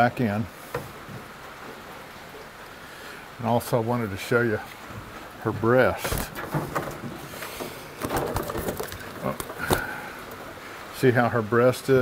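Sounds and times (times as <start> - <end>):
rustling and scuffling: 4.6 - 10.5.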